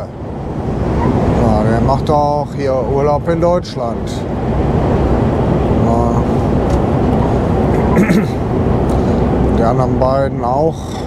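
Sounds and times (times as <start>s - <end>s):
road noise: 0.0s - 11.0s
truck engine drone: 0.0s - 11.0s.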